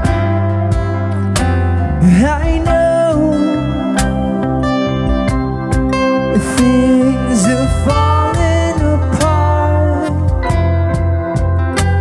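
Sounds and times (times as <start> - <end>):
acoustic guitar: 0.0 - 12.0
electric bass line: 0.0 - 12.0
man singing: 2.0 - 4.1, 6.3 - 10.5.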